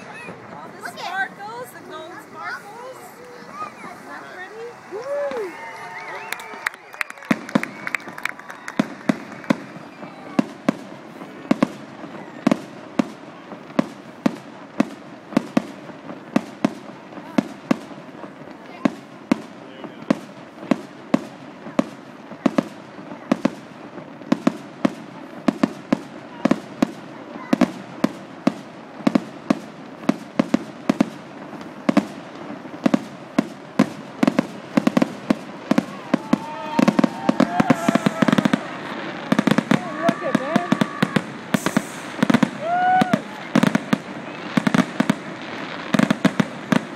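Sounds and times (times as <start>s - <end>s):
fireworks bangs: 0.0s - 46.9s.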